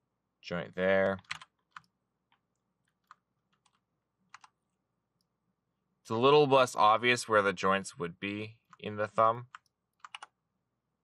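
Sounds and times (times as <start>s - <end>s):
keyboard and mouse clicks: 1.0s - 4.6s, 9.5s - 10.4s.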